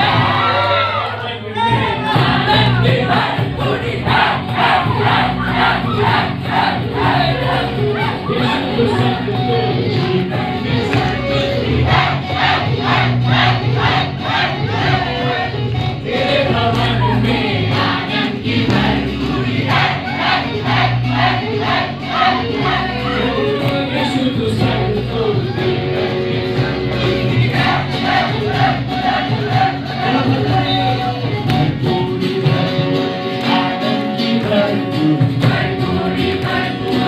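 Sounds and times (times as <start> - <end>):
several voices singing together: 0.0 - 1.0, 1.6 - 37.0
acoustic and electric guitars: 0.0 - 37.0
amplified band music: 0.0 - 37.0
steady beat: 1.6 - 33.7
hand-clapping on beat: 9.9 - 11.3, 17.7 - 20.4, 23.6 - 24.2, 31.4 - 32.0, 33.3 - 37.0.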